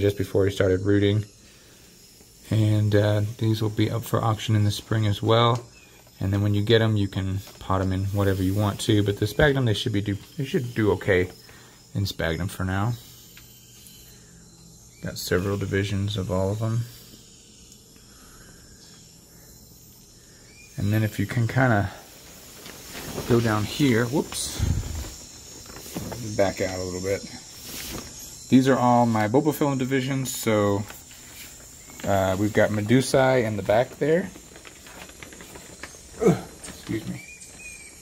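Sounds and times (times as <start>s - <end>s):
insect chorus chirring: 0.0s - 38.0s.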